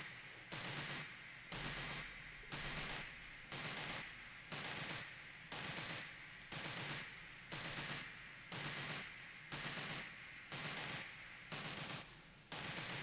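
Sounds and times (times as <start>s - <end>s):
looping noisy electronic hit: 0.0s - 13.0s
low hum: 0.0s - 13.0s.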